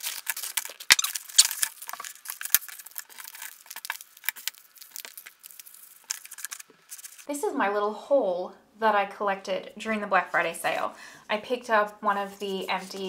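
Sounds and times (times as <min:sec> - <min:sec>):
cardboard and paper packaging rustling: 0:00.0 - 0:07.3, 0:12.2 - 0:13.0.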